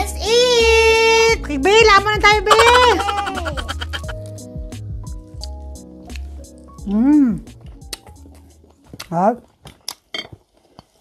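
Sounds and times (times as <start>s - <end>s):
soft background music: 0.0s - 10.6s.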